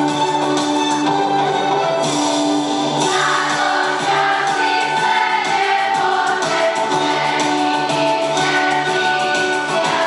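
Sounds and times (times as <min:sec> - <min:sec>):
musical accompaniment with steady beat: 0:00.0 - 0:10.0
children's choir singing: 0:02.9 - 0:10.0.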